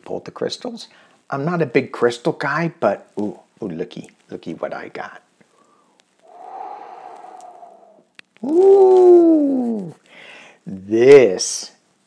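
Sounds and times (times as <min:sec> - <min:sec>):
man breathing out: 0:05.5 - 0:08.0, 0:10.1 - 0:10.6.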